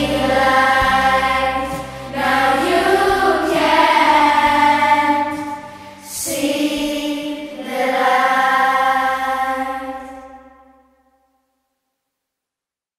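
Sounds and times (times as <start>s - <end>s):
choir-like vocal harmonies: 0.0s - 10.8s.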